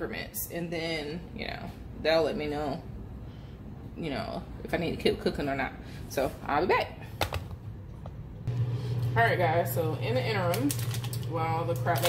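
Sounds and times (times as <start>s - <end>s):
microwave humming: 7.2s - 12.0s.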